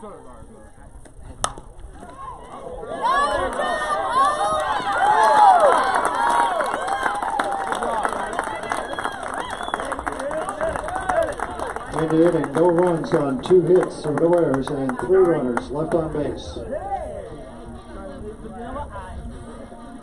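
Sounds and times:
crowd yelling and cheering: 2.0s - 17.7s.

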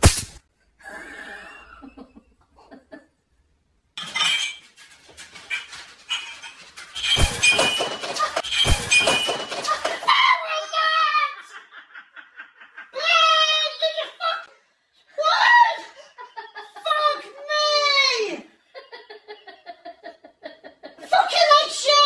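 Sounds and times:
electric crack of shock stick: 0.0s - 0.4s
crockery clattering: 4.0s - 10.1s.

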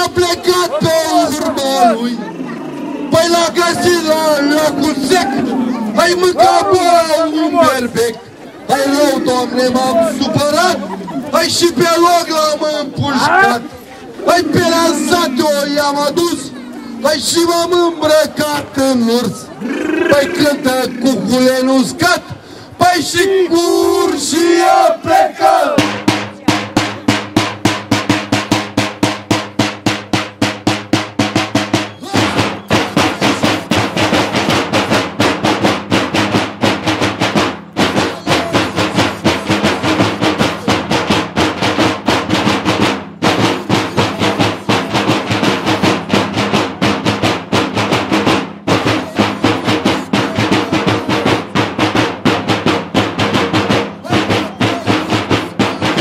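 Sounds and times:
drums beating a fast roll: 0.0s - 56.0s.

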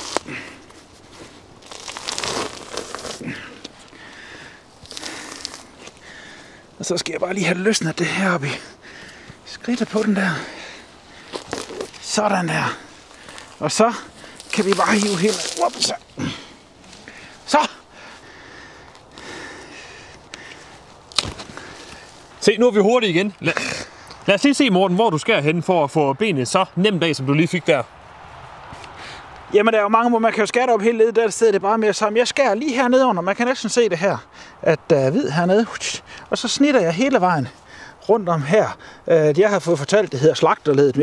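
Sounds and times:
hide tearing and rustling: 0.0s - 3.9s, 11.2s - 12.2s, 14.3s - 16.1s, 21.0s - 22.2s
handling of a carcass: 0.0s - 22.4s
sharp crack of bone snapping: 21.1s - 21.5s.

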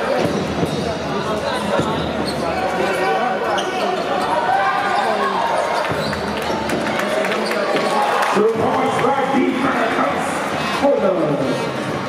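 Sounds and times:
background voices in arena: 0.0s - 12.0s
shoes squeaking on floor: 0.2s - 6.6s.

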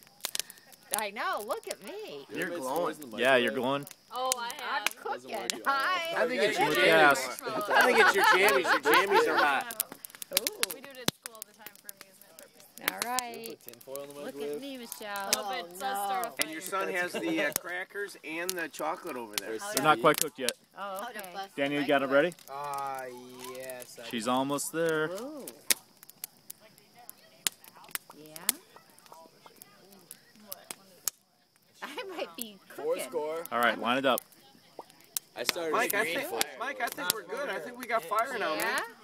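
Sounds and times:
campfire crackling: 0.0s - 39.0s
fire pops and snaps: 0.0s - 39.0s.

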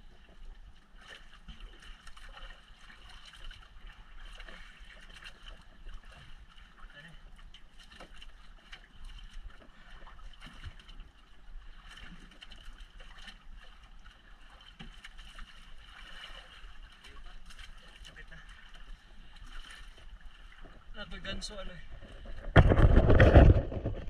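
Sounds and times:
water splashing against boat hull: 0.0s - 24.0s
wind rumble on microphone: 21.8s - 24.0s.

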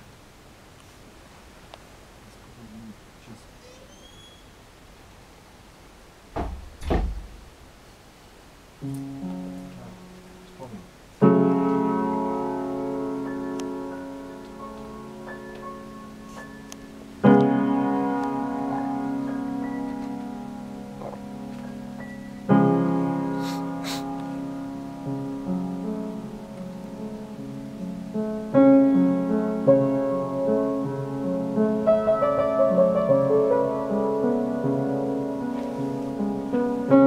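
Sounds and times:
soft high piano notes: 3.6s - 4.5s, 9.0s - 27.6s
faint short high chirp: 3.6s - 4.6s
loud dull thumps: 6.3s - 7.4s
piano chord ringing: 9.1s - 37.0s.

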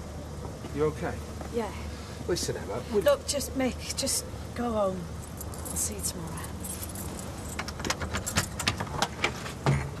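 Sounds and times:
keys jangling: 5.2s - 8.8s.

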